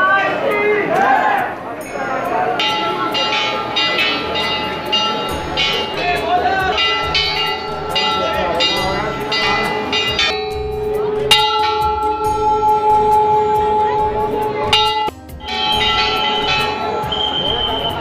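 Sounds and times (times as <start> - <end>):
crowd voices: 0.0 - 18.0
brass bells ringing: 1.0 - 18.0.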